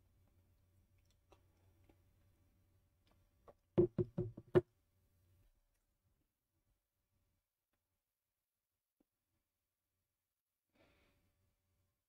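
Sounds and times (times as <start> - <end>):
sharp knocks: 3.8 - 4.6.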